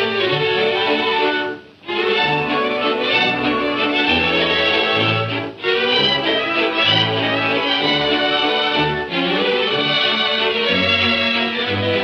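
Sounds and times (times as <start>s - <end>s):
orchestral music with violins: 0.0s - 12.0s.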